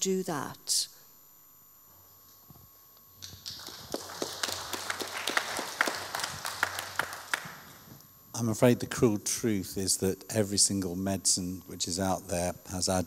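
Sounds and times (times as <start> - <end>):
audience applauding: 3.2 - 7.9.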